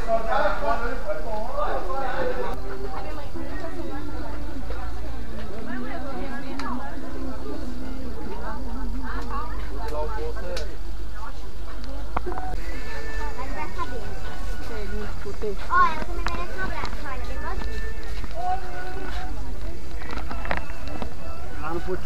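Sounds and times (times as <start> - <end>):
people talking: 0.0 - 20.5
low rumble: 4.3 - 12.7.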